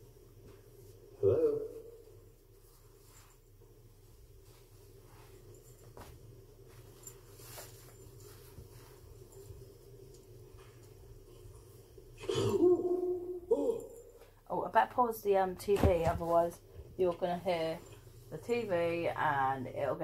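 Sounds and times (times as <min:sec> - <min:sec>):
steady low hum: 0:00.0 - 0:20.0
rustling of baby clothes: 0:02.4 - 0:09.6.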